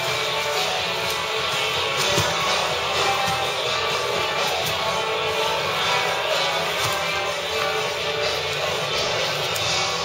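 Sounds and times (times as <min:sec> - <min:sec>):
rock music with guitar: 0:00.0 - 0:10.0.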